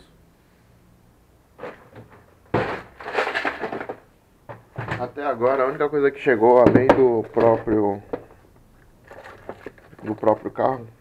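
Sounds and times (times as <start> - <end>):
objects clattering and rustling: 1.6 - 5.9, 6.6 - 10.7.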